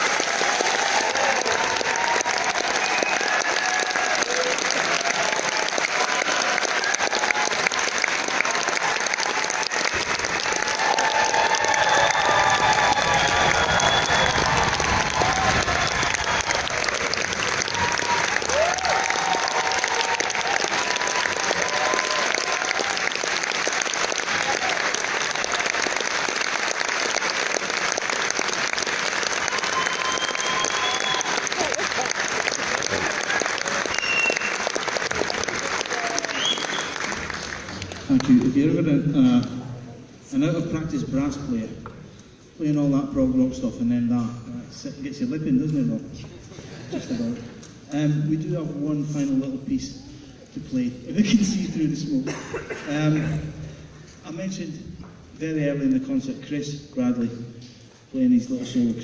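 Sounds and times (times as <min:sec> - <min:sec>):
audience applauding: 0:00.0 - 0:38.6.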